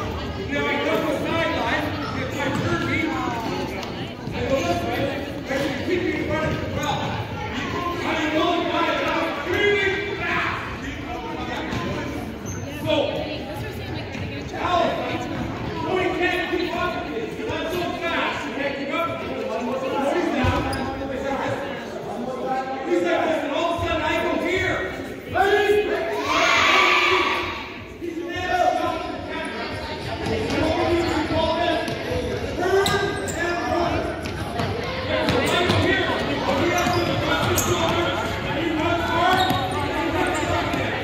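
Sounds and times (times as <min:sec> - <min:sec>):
voices chattering and calling out: 0:00.0 - 0:41.0.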